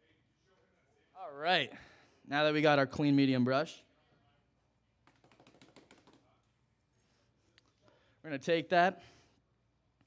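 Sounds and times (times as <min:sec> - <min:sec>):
faint clicks and taps: 0:05.0 - 0:06.6.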